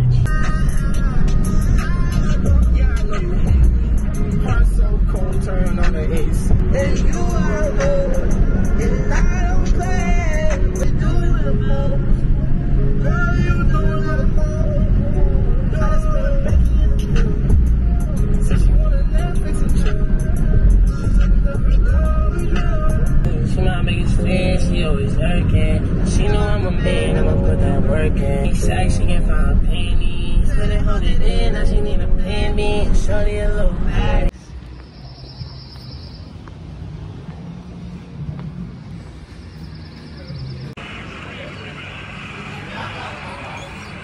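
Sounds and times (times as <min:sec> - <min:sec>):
music with singing and heavy bass: 0:00.0 - 0:35.7
car driving rumble: 0:00.0 - 0:44.0.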